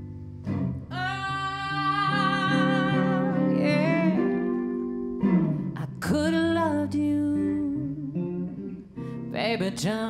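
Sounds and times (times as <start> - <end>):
electric guitar accompaniment: 0.0 - 10.0
woman singing a slow ballad: 0.9 - 10.0.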